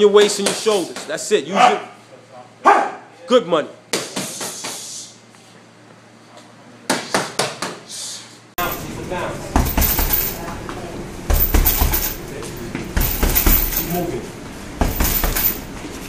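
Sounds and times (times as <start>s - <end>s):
punches thudding on heavy bag: 9.5s - 10.4s, 11.3s - 12.2s, 12.9s - 14.0s, 14.8s - 15.6s.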